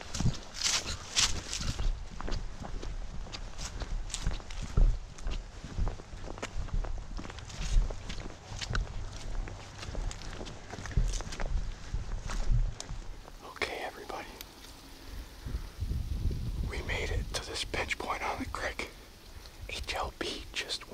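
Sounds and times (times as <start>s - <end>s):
footsteps on leaves and brush: 0.0s - 16.7s.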